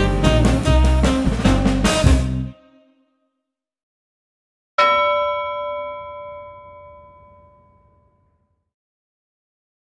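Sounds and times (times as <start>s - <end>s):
bell-like musical note: 4.8s - 8.5s.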